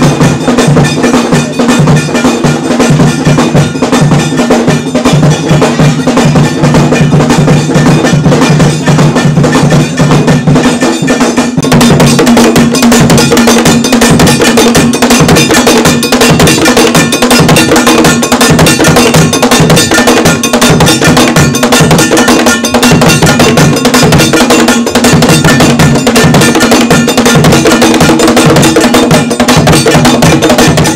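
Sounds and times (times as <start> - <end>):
ringing metal bell: 0.0 - 30.9
stick-beaten drums: 0.0 - 30.9.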